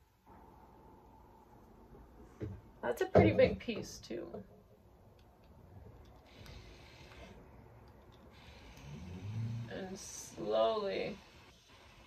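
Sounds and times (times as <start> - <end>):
faint steam hiss: 6.2 - 12.0.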